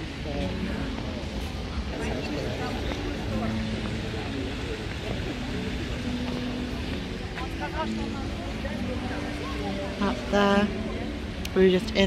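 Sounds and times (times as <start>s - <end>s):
long drawn-out tones: 0.0s - 12.0s
people's voices: 0.0s - 12.0s.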